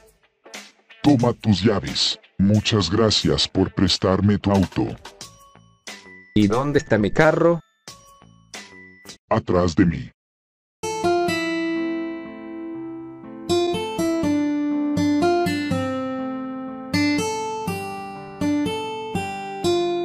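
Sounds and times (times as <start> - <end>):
plucked acoustic guitar melody: 10.8 - 20.0.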